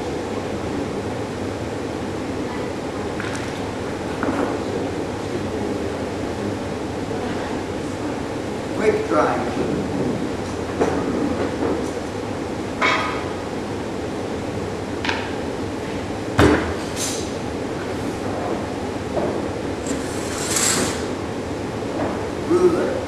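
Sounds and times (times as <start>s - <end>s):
ventilation hum: 0.0s - 23.0s.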